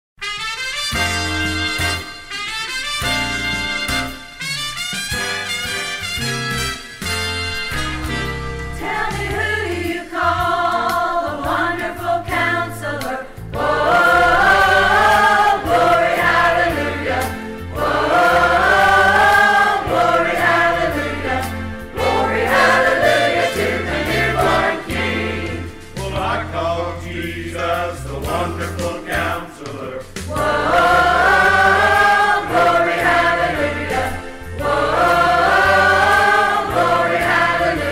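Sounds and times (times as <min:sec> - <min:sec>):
instrumental accompaniment: 0:00.2 - 0:37.9
choir singing gospel song: 0:08.7 - 0:37.9.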